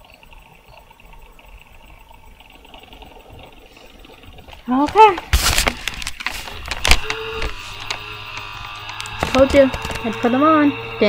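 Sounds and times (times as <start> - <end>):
computer fan humming: 0.0 - 11.0
webcam bumping and rustling: 4.2 - 11.0.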